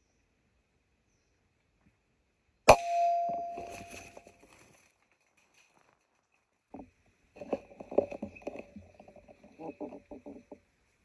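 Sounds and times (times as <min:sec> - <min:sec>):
ringing tone: 0:02.7 - 0:04.4.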